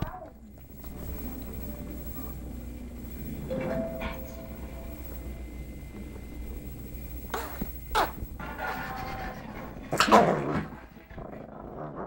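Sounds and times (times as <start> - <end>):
puppy growling: 7.3 - 12.0.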